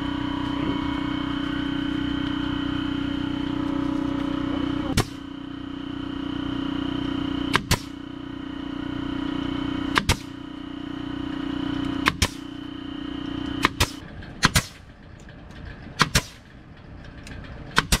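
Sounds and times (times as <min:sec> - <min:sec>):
air compressor humming: 0:00.0 - 0:18.0
pneumatic stapler firing: 0:04.9 - 0:05.3, 0:07.5 - 0:08.0, 0:09.9 - 0:10.4, 0:12.0 - 0:12.6, 0:13.6 - 0:15.0, 0:16.0 - 0:16.6, 0:17.7 - 0:18.0.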